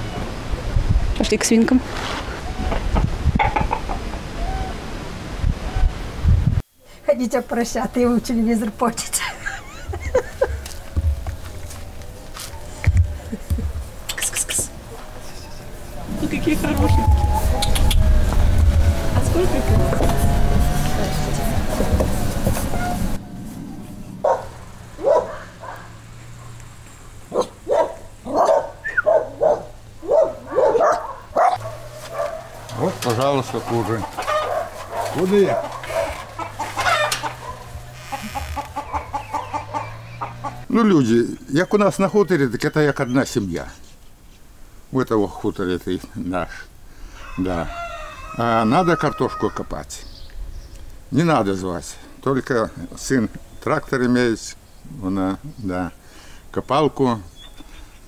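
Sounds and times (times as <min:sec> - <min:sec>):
low farmyard rumble: 0:00.0 - 0:04.9, 0:07.1 - 0:43.8, 0:47.1 - 0:50.3
hens clucking: 0:02.6 - 0:04.4, 0:31.6 - 0:40.7
dog barking: 0:24.2 - 0:26.6, 0:27.3 - 0:32.9, 0:34.2 - 0:36.3, 0:36.9 - 0:37.7.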